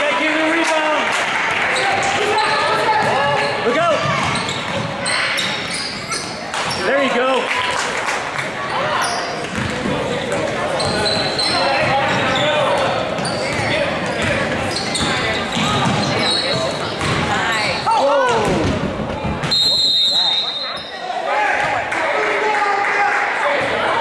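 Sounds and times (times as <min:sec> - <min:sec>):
voices echoing in a hall: 0:00.0 - 0:24.0
sneakers squeaking: 0:01.6 - 0:07.8, 0:08.4 - 0:21.7
basketball bouncing on wooden floor: 0:04.0 - 0:05.0, 0:09.5 - 0:17.4
referee's whistle blast: 0:19.5 - 0:20.9.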